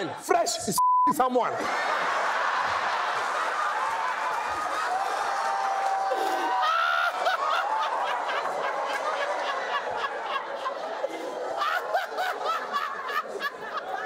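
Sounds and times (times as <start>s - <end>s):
audience laughing: 1.5s - 14.0s.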